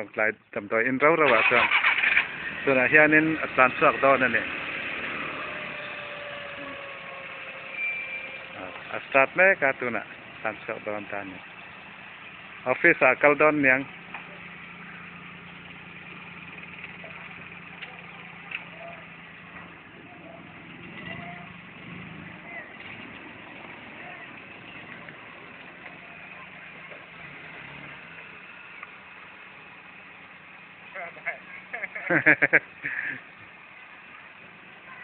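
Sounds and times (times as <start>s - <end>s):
car engine idling: 0.7s - 35.0s.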